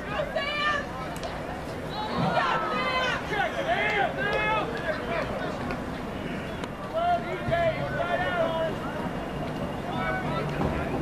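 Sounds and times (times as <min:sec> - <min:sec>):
voices shouting and calling: 0:00.0 - 0:11.0.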